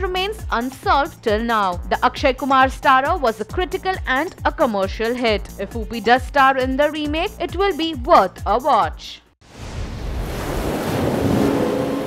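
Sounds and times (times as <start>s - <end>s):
rushing wave-like swell: 9.5s - 12.0s.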